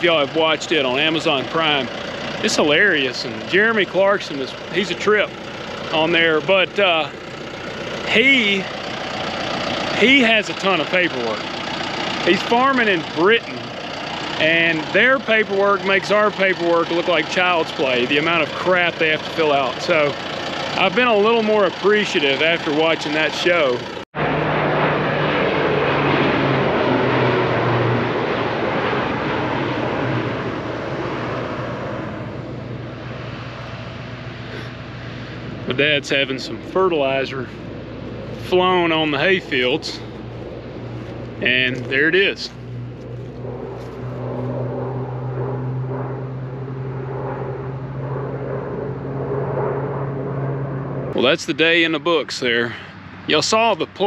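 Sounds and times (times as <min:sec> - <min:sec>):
airplane engine droning: 0:00.0 - 0:54.0.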